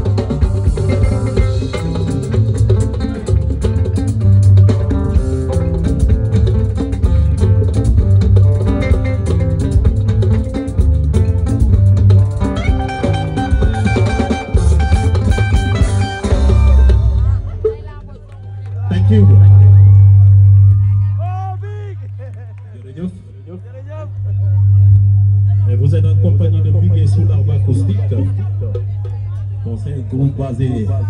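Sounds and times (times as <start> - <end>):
drum kit: 0.0 - 18.3
electric guitars: 0.0 - 22.8
electric bass line: 0.0 - 31.0.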